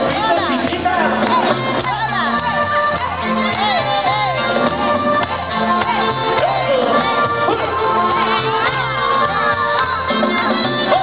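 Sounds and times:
crowd voices and shouts: 0.0 - 11.0
live band playing dance music: 0.0 - 11.0.

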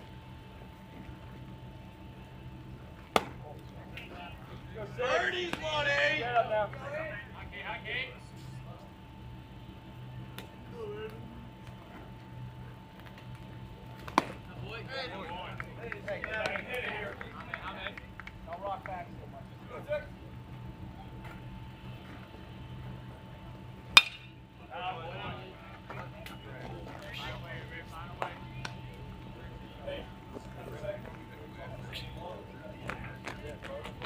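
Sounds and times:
bat cracking baseball: 3.1 - 3.4, 24.0 - 24.4.

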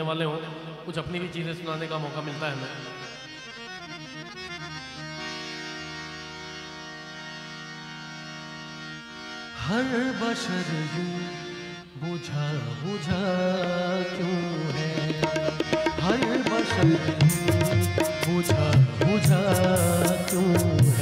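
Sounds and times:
harmonium playing: 0.3 - 21.0
man singing: 9.6 - 21.0.

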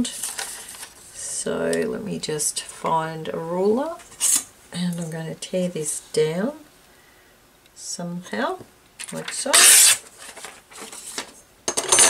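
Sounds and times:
paper rustling: 0.0 - 1.1, 9.1 - 11.4
metal ruler clattering on table: 11.1 - 12.0.

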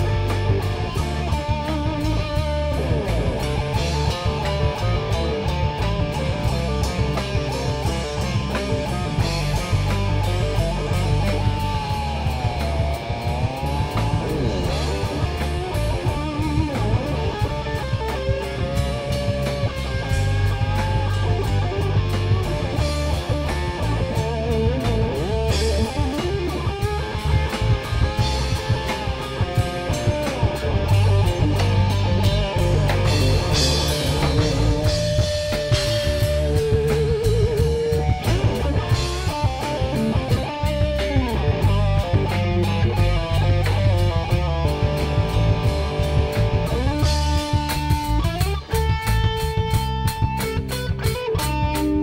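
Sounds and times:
distorted electric guitar lead: 0.0 - 52.0
drum kit beat: 0.0 - 52.0
heavy bass: 0.0 - 52.0.

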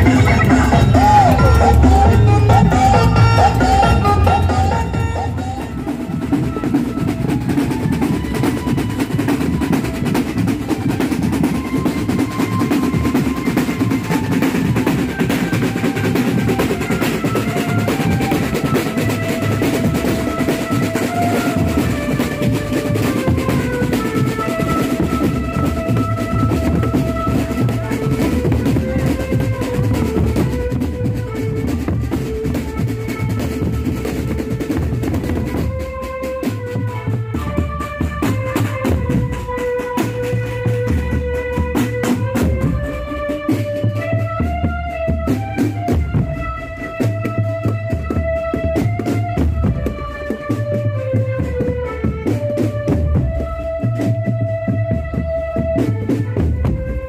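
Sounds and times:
marching drum band: 0.0 - 57.0
melody of held notes: 0.0 - 57.0.

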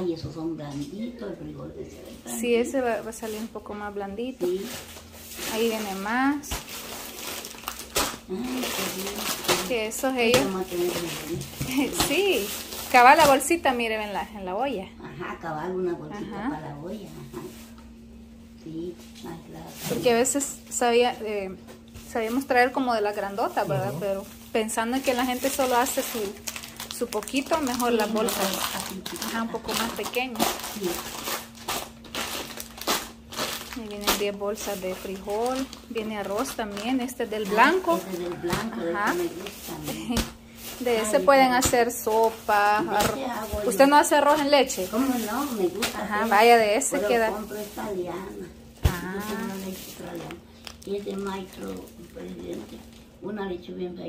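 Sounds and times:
plastic bags of beans crinkling: 4.4 - 14.4, 22.0 - 53.2.

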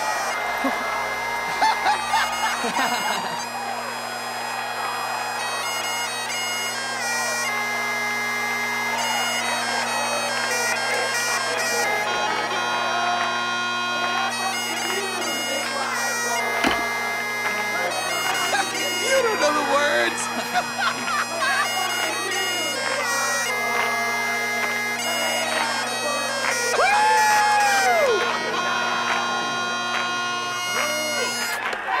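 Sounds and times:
bagpipes playing: 0.0 - 32.0.

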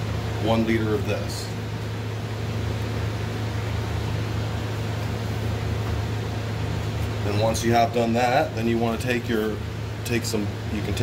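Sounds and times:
ultrasonic cleaner humming: 0.0 - 11.0.

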